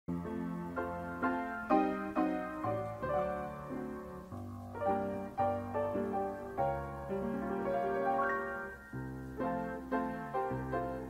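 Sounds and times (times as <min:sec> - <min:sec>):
piano music: 0:00.1 - 0:11.0.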